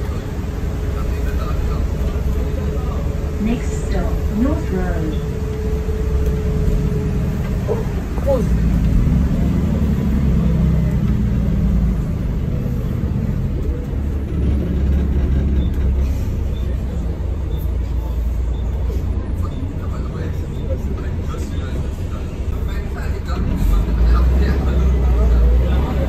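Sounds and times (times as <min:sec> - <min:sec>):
bus diesel engine: 0:00.0 - 0:26.0
road noise: 0:00.0 - 0:26.0.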